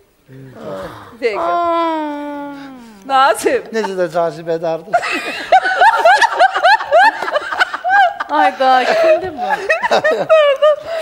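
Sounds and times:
woman laughing hard: 0:05.0 - 0:11.0.

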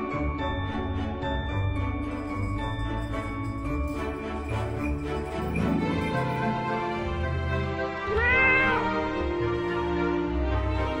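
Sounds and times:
background music: 0:00.0 - 0:11.0
cat meowing: 0:08.1 - 0:09.0.

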